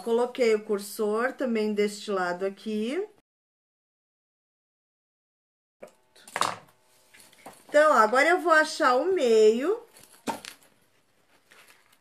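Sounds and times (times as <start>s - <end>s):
fabric rustling: 9.9s - 12.0s
faint handling noise: 9.9s - 12.0s.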